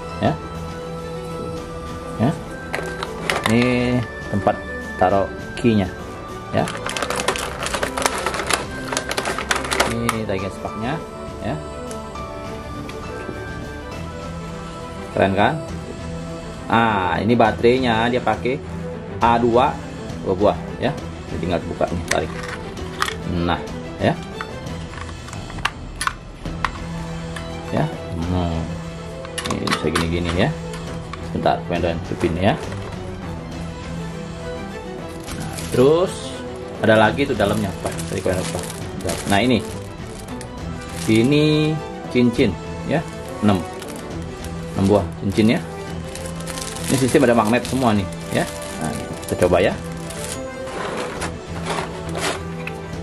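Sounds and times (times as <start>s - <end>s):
background music: 0.0s - 53.0s
plastic packaging crinkling: 2.7s - 3.8s, 6.6s - 10.3s, 35.1s - 41.4s, 42.8s - 52.5s.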